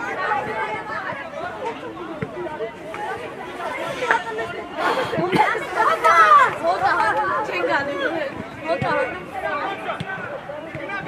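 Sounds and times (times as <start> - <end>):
people calling out and talking: 0.0 - 11.0.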